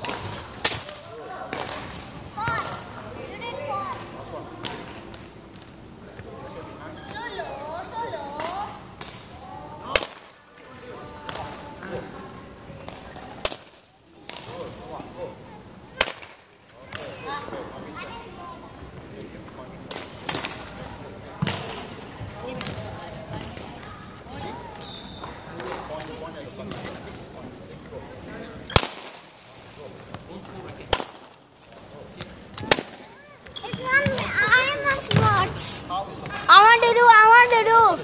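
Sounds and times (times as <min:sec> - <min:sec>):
faint children's voices: 0:00.0 - 0:05.0, 0:16.7 - 0:19.4, 0:32.6 - 0:38.0.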